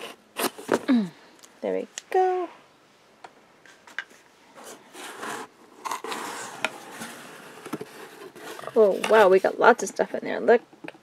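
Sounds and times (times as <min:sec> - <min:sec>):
cardboard rubbing and scraping: 0:04.6 - 0:09.6.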